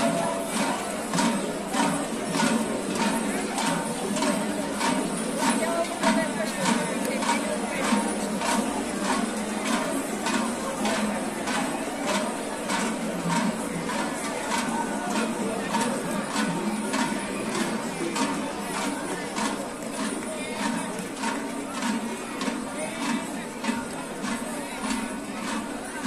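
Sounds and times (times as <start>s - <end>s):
murmur of large crowd: 0.0s - 26.0s
rhythmic percussive beat: 0.0s - 26.0s.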